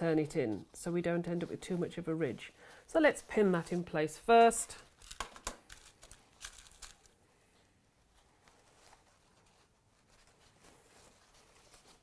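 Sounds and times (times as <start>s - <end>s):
fabric rustling: 0.0s - 12.0s.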